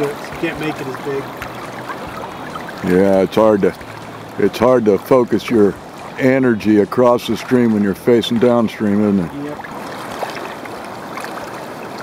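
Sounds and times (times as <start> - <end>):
river water rushing: 0.0 - 12.0.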